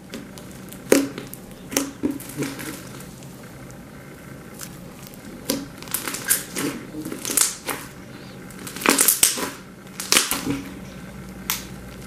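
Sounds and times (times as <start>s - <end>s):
slime crackling and squishing: 0.0s - 12.0s.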